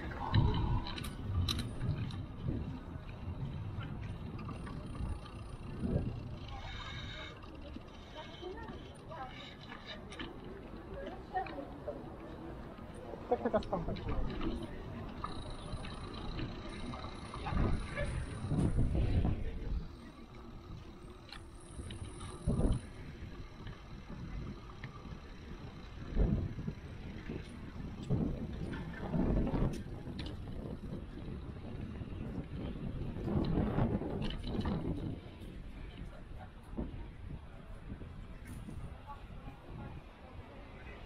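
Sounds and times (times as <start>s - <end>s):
wind buffeting microphone: 0.0s - 7.9s, 8.5s - 41.0s
bicycle rolling over brick paving: 0.0s - 8.8s, 12.8s - 35.7s.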